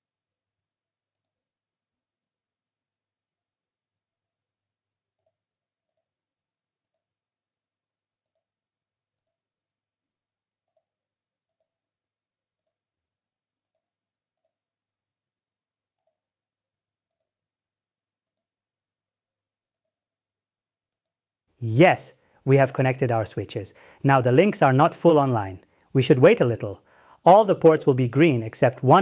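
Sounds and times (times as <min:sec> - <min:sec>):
computer mouse clicks: 0:06.8 - 0:07.1, 0:08.2 - 0:08.5, 0:09.2 - 0:09.4, 0:12.6 - 0:12.8, 0:13.6 - 0:13.8, 0:16.0 - 0:16.2, 0:17.1 - 0:17.3.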